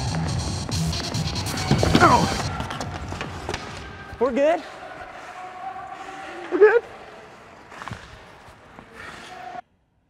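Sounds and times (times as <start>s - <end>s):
echoing arena noise: 0.0s - 9.7s.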